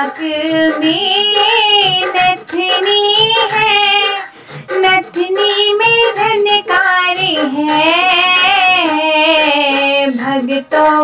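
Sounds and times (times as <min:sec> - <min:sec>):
girl singing devotional song: 0:00.0 - 0:11.0.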